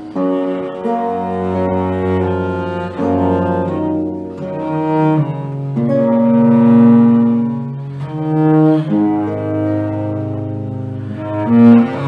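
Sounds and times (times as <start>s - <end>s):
bass viol long bowed note: 0.0s - 12.0s.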